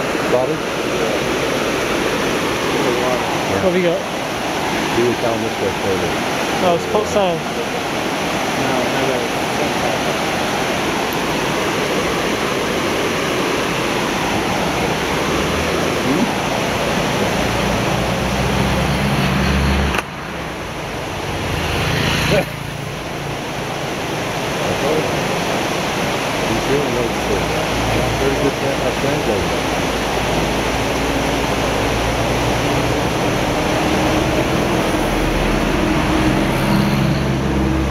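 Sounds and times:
river water rushing: 0:00.0 - 0:37.9.

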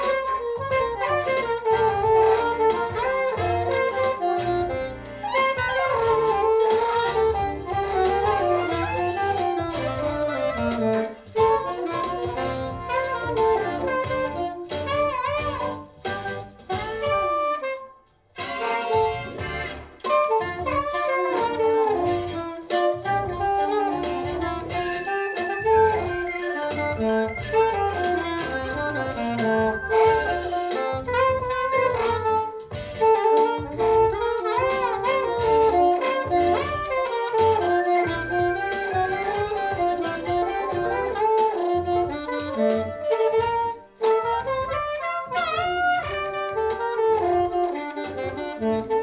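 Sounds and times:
bass line and drums: 0:00.0 - 0:17.7, 0:18.4 - 0:49.0
alto saxophone melody: 0:00.0 - 0:49.0
backing track with steady beat: 0:00.0 - 0:49.0.

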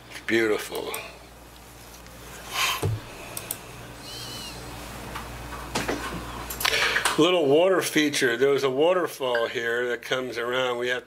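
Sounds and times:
steady low hum: 0:00.0 - 0:11.0
computer mouse clicks: 0:03.3 - 0:03.6.

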